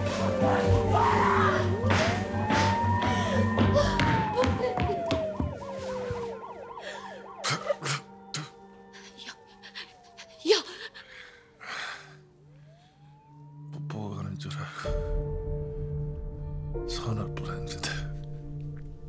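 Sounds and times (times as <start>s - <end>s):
siren wailing: 0.0s - 15.4s
background music: 0.0s - 19.0s.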